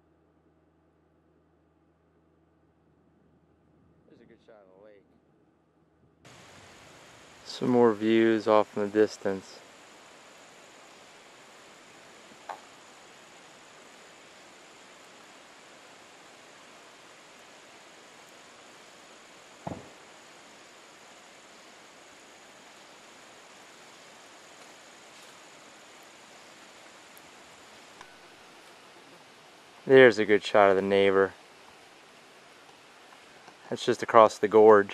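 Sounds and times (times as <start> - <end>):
outdoor background hiss: 0.0 - 34.9
knocks: 19.6 - 20.0.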